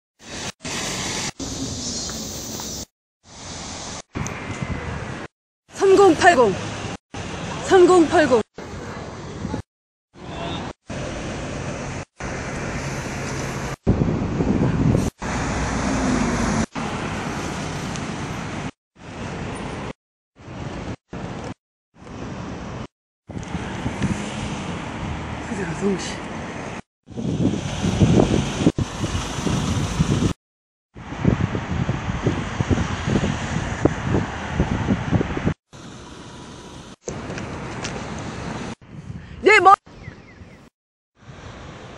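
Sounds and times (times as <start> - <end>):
street traffic hum: 0.2 - 30.4, 31.0 - 41.9
wind rumbling on microphone: 3.3 - 5.3, 10.3 - 30.4, 31.0 - 35.6, 37.1 - 41.9.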